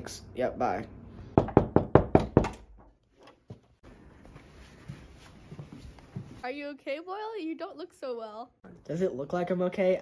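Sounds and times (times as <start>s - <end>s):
knocking on wooden door: 1.4s - 2.7s.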